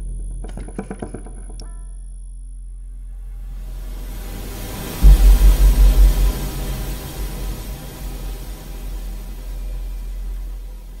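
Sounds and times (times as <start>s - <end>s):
deep pulsing rumble: 2.9s - 11.0s.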